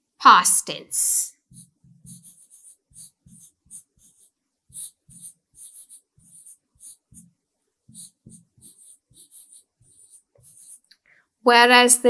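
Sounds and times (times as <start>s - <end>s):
pen scratching and tapping on screen: 1.4s - 11.1s.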